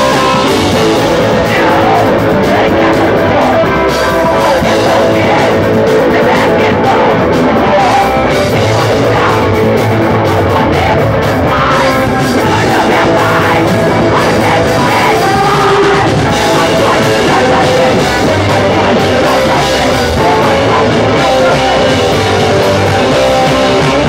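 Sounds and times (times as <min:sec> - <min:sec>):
drum kit: 0:00.0 - 0:24.0
electric guitar: 0:00.0 - 0:24.0.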